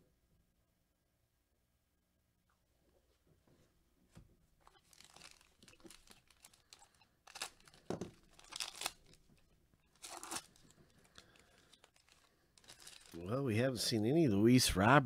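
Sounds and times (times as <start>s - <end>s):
foil wrapper tearing and crinkling: 4.6s - 13.4s.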